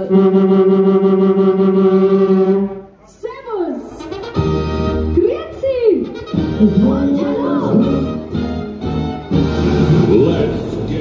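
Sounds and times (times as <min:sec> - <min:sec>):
man singing through pa: 0:09.9 - 0:11.0.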